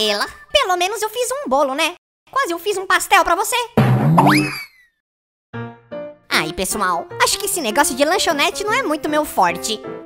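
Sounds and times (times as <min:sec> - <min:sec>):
cartoon springy boing: 0:03.8 - 0:04.8.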